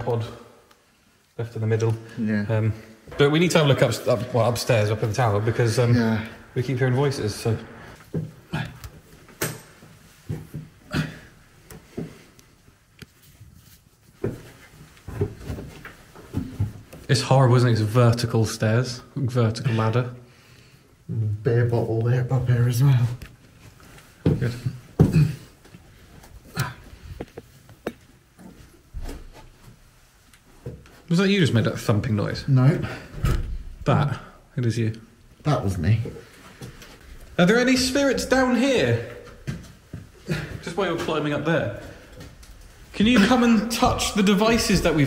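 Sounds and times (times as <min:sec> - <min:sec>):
footsteps and knocks on ladder rungs: 0:13.1 - 0:17.1, 0:23.8 - 0:29.8.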